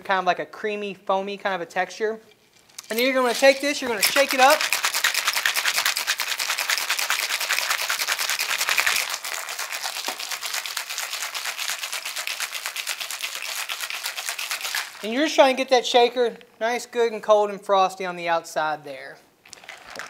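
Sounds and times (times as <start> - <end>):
ice rattling in metal cocktail shaker: 2.8 - 15.3, 19.5 - 20.0.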